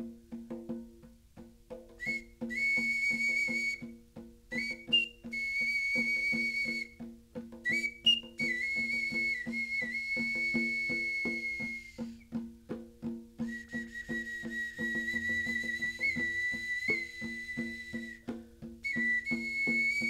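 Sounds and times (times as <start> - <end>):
hand drum beaten: 0.0 - 20.0
clay whistle high notes: 2.0 - 3.8, 4.5 - 7.0, 7.7 - 12.2, 13.5 - 18.2, 18.8 - 20.0.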